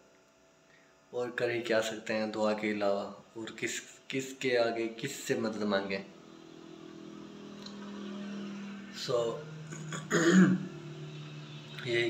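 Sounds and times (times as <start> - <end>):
low steady hum: 0.0 - 12.0
man clearing his throat: 9.7 - 10.7.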